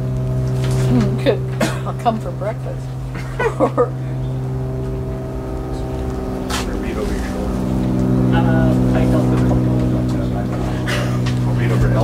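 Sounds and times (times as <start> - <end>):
engine low drone: 0.0 - 12.0.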